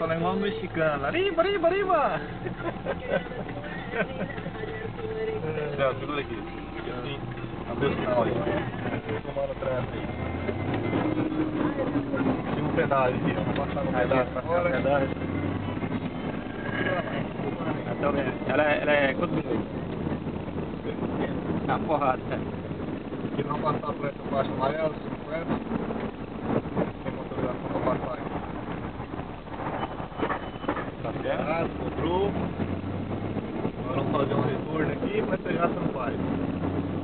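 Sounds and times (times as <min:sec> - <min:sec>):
engine and road drone: 0:00.0 - 0:37.0
people talking and laughing: 0:01.9 - 0:06.5, 0:16.3 - 0:22.4.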